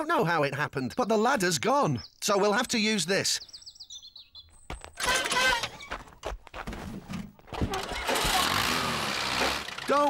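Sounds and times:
cartoon tractor engine starting: 0:05.0 - 0:05.8, 0:07.6 - 0:10.0.

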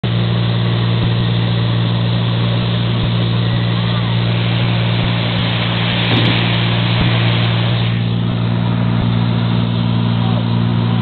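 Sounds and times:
light aircraft engine droning: 0:00.0 - 0:11.0.

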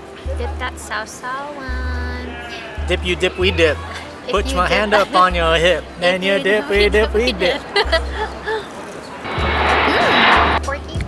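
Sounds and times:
background music with bass: 0:01.7 - 0:06.0.

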